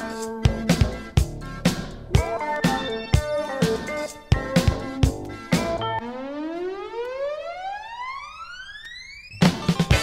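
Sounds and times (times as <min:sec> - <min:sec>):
rising synthesizer siren tone: 0:05.8 - 0:09.4.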